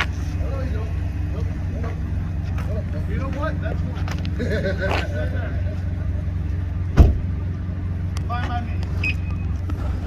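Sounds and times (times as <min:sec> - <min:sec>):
sharp loud thump: 0:07.0 - 0:07.3.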